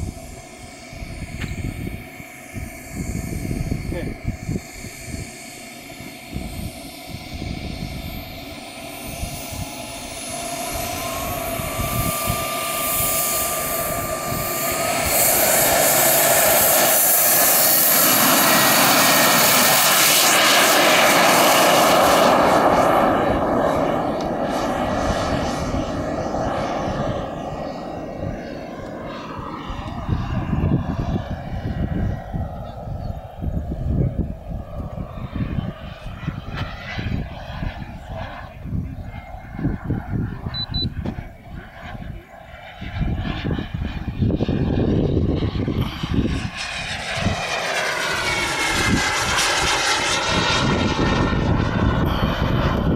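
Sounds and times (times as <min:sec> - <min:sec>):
model jet engine whining: 0:00.0 - 0:52.9.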